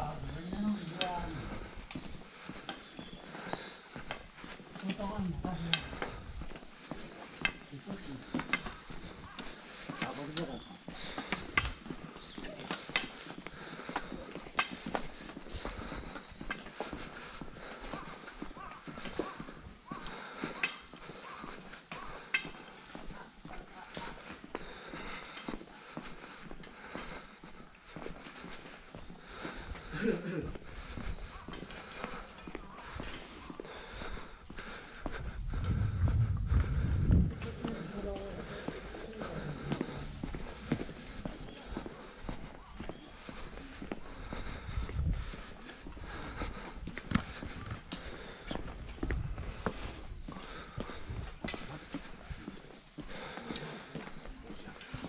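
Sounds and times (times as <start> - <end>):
footsteps on stone path: 0.0 - 55.0
low rumble: 35.5 - 37.8.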